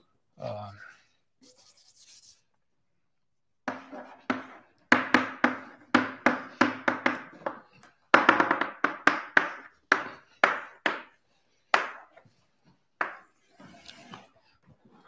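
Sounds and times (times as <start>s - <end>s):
chalk tapping on blackboard: 3.7s - 12.3s, 13.0s - 13.4s.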